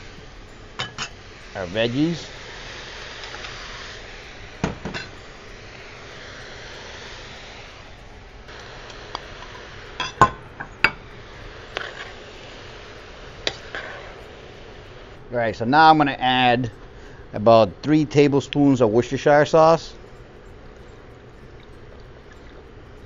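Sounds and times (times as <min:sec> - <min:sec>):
faint hiss: 0:00.0 - 0:23.0
glass bowls clinking on pot rim: 0:00.5 - 0:01.2.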